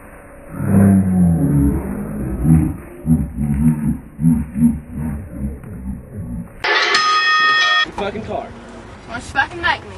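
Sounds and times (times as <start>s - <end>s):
steady pitched tone: 0.0s - 7.9s.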